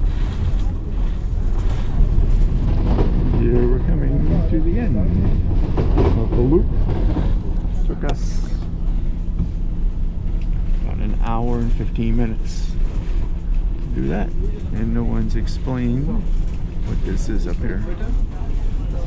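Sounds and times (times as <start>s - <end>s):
low city rumble: 0.0s - 19.0s
person's voice: 13.8s - 16.2s.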